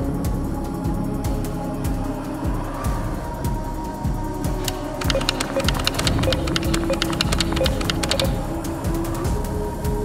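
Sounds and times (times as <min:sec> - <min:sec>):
electronic clicks and ticks: 0:04.6 - 0:08.5.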